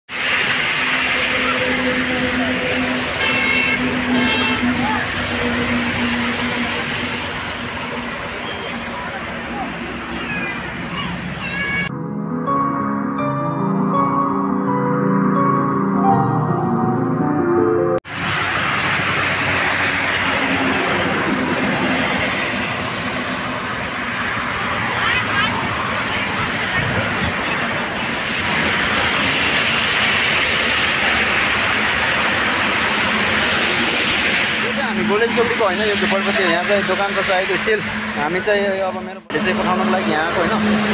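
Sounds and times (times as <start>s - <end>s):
heavy vehicle engine drone: 0.1s - 11.9s, 15.4s - 40.9s
tyres hissing on wet asphalt: 0.1s - 11.9s, 18.1s - 40.9s.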